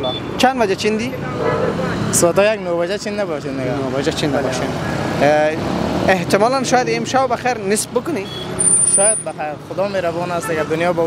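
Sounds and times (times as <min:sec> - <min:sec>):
men talking: 0:00.0 - 0:11.0
street traffic: 0:00.0 - 0:11.0.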